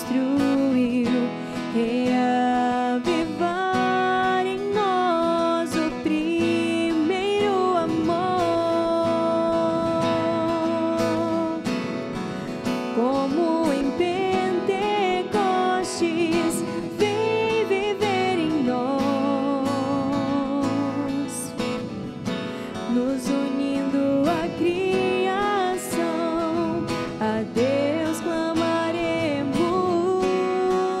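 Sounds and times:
person singing a hymn: 0.0s - 11.7s, 13.0s - 21.5s, 22.9s - 31.0s
acoustic guitar accompaniment: 0.0s - 31.0s.

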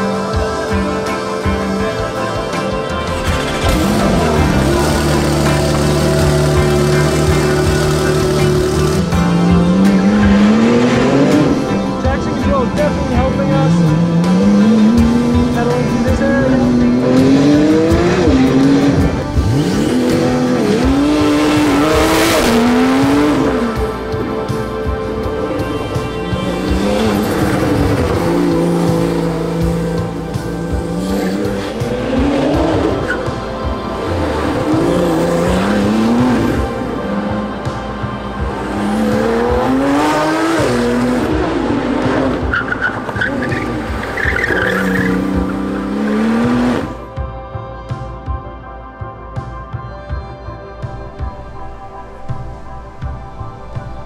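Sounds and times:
sports car engine revving: 2.9s - 12.0s, 12.7s - 47.0s
tires squealing: 3.0s - 12.0s, 25.2s - 47.0s.

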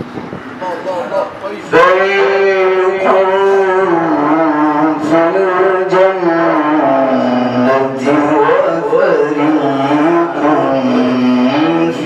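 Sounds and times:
man reciting melodically: 0.8s - 12.0s.

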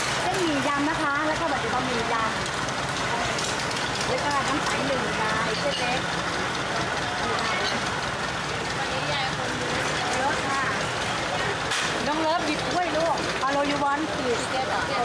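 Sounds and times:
people talking: 0.2s - 2.4s, 4.0s - 6.1s, 6.7s - 7.9s, 8.6s - 15.0s.

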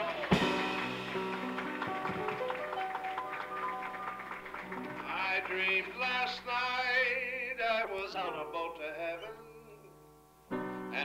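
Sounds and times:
live jazz trio: 0.0s - 3.3s
quick piano notes: 0.0s - 6.5s.

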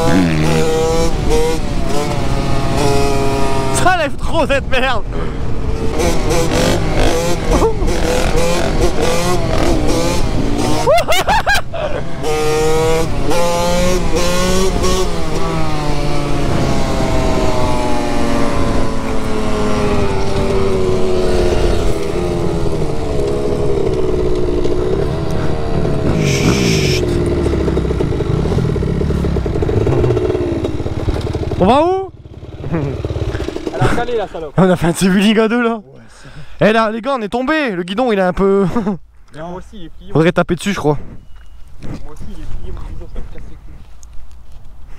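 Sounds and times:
dirt bike engine revving: 0.0s - 35.4s
wind buffeting microphone: 12.8s - 31.6s.

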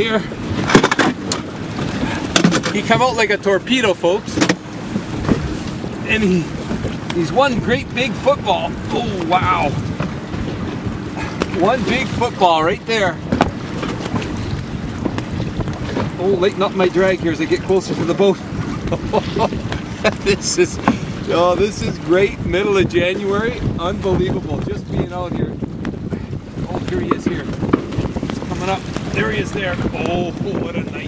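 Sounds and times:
choppy water: 0.0s - 31.0s
small boat rumbling: 0.0s - 31.0s
wind buffeting microphone: 0.0s - 31.0s.

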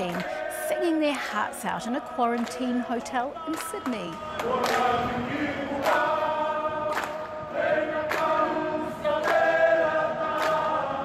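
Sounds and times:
group singing in harmony: 0.0s - 11.0s.

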